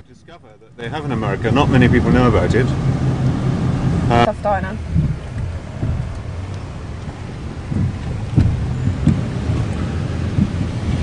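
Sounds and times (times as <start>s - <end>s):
road noise rumble: 0.0s - 11.0s
low thumps: 0.8s - 11.0s.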